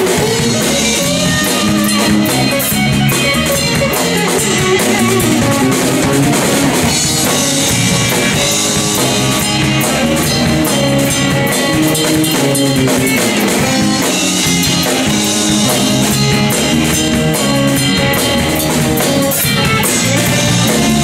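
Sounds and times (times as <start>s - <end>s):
bass guitar: 0.0s - 21.0s
drum kit: 0.0s - 21.0s
electric guitar: 0.0s - 21.0s.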